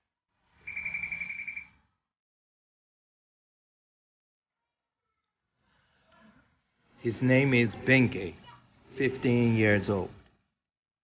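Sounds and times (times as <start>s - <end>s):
rapidly pulsing electronic beep: 0.7s - 1.7s.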